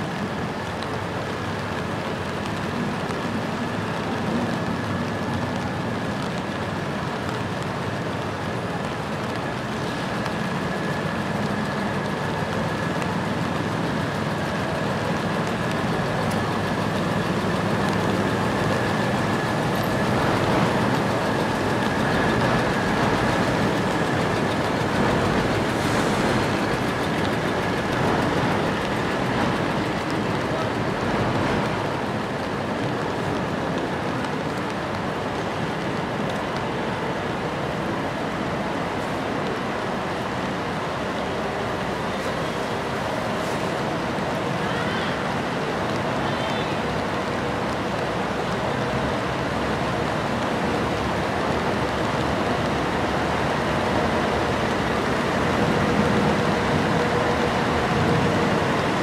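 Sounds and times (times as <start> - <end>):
bus passing: 0.0 - 59.0
traffic on wet street: 0.0 - 59.0.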